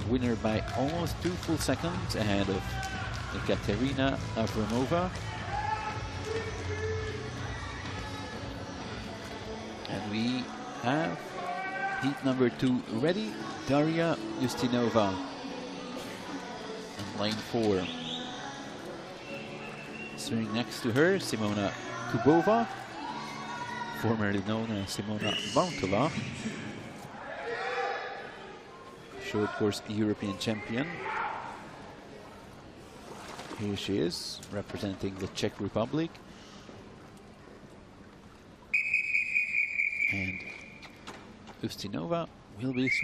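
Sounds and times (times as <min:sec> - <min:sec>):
indoor swimming arena ambience: 0:00.0 - 0:43.0
long whistle blast: 0:38.7 - 0:40.8.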